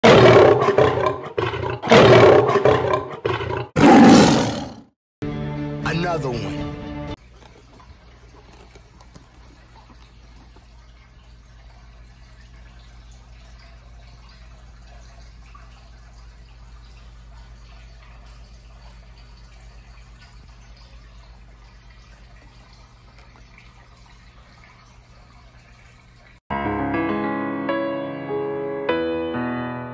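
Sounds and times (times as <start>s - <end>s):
loud roars: 0.0s - 4.9s
music with held chord: 5.2s - 7.2s, 26.5s - 29.9s
aquarium water trickling: 7.2s - 26.4s.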